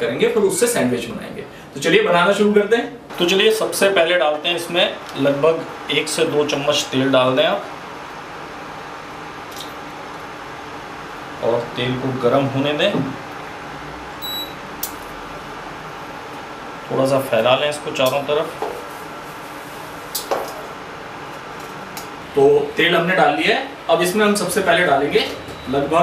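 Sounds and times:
steady background hum: 0.0 - 26.0.

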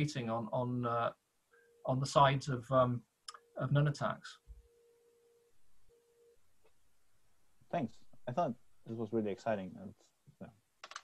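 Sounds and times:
faint steady tone: 0.0 - 10.7.

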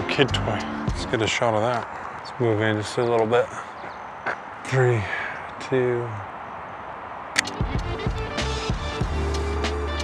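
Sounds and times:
music with deep bass and beat: 0.0 - 1.3, 7.4 - 10.0.

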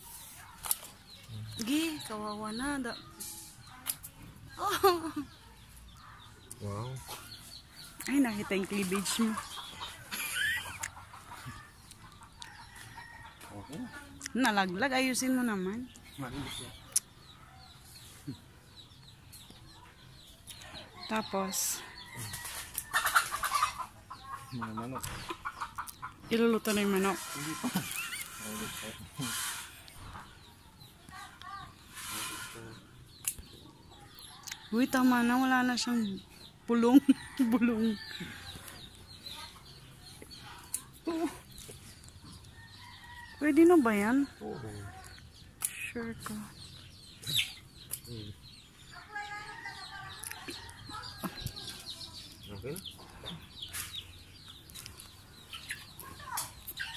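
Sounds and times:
chickens clucking: 0.0 - 56.9.

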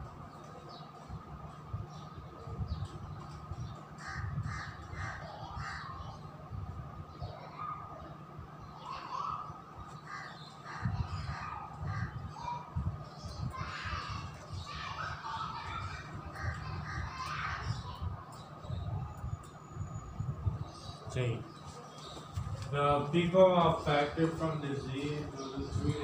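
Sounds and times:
birds calling: 0.0 - 26.0.

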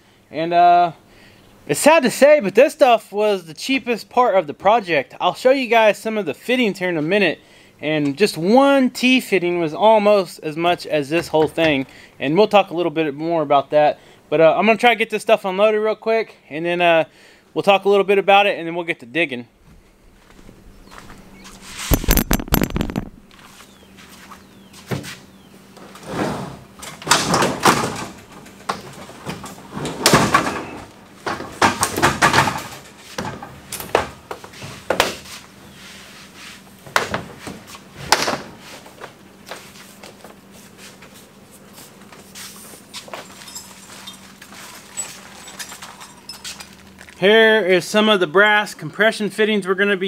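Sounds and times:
thumps and knocks of materials: 21.9 - 23.4, 27.0 - 35.2
pipe coil scraping off tailgate: 25.8 - 30.9.

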